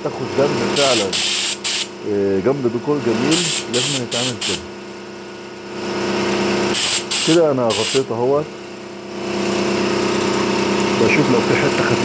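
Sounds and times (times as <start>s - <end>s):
paint spray gun hissing: 0.8s - 1.9s, 3.3s - 4.6s, 6.7s - 8.1s.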